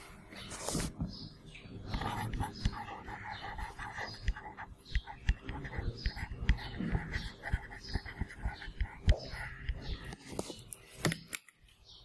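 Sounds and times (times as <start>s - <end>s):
people whispering: 1.5s - 10.4s.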